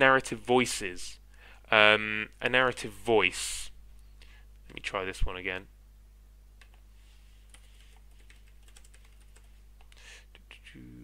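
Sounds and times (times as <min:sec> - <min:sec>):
faint keyboard typing: 0:06.6 - 0:10.0.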